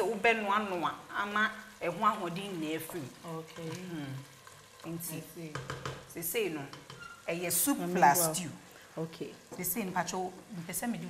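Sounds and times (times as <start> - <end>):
woman talking: 0.0 - 4.2, 7.3 - 11.0
stew sizzling in a pot: 0.0 - 11.0
wooden spoon stirring: 6.7 - 8.4.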